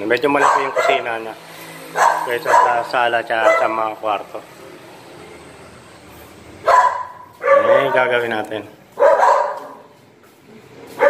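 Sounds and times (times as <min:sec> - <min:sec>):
dog barking: 0:00.3 - 0:01.2, 0:01.9 - 0:03.8, 0:06.6 - 0:08.2, 0:08.9 - 0:10.0.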